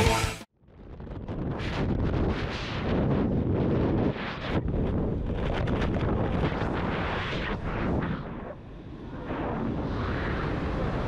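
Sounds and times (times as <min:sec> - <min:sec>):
wind buffeting microphone: 0:00.7 - 0:11.0.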